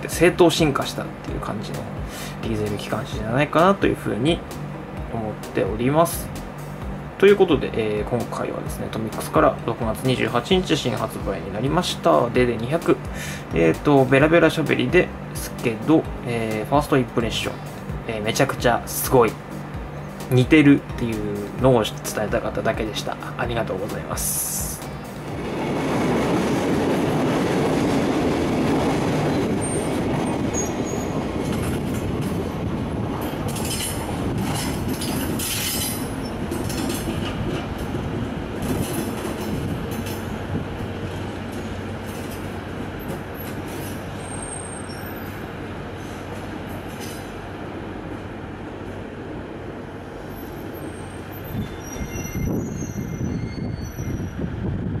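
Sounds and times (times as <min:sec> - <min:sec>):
diesel locomotive engine drone: 0:00.0 - 0:55.0
wheel and rail noise: 0:00.0 - 0:55.0
high wheel squeals: 0:29.3 - 0:31.3, 0:33.4 - 0:37.1, 0:41.5 - 0:47.4, 0:50.1 - 0:54.6.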